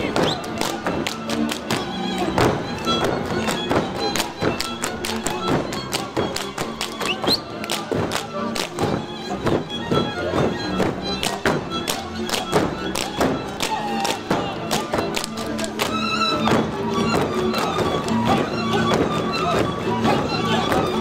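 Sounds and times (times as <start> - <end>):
hands slapping boot-legs: 0.0 - 21.0
string band folk dance music: 0.0 - 21.0.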